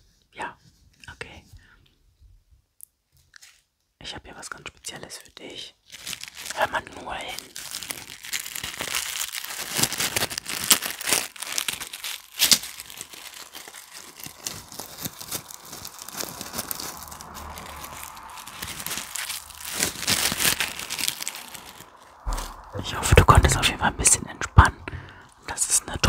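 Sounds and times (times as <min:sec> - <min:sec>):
dry petals crinkling: 0:05.4 - 0:24.7.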